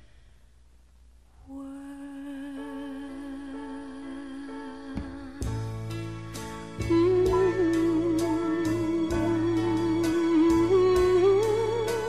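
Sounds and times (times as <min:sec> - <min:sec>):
soft sustained accompaniment: 0:01.4 - 0:12.0.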